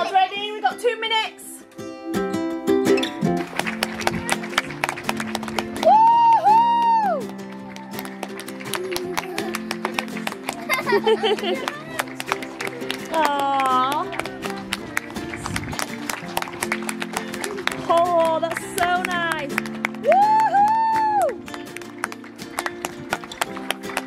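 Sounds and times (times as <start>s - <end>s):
background music: 0.0s - 24.0s
people clapping: 3.3s - 24.0s
voices whooping: 5.8s - 7.3s, 20.0s - 21.4s.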